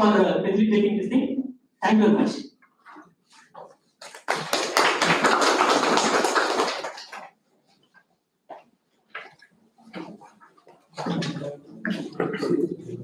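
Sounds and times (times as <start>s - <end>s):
audience clapping: 4.0s - 7.4s.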